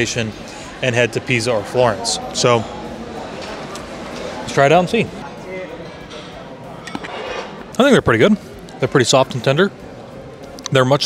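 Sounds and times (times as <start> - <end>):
distant diners talking: 0.0 - 11.0.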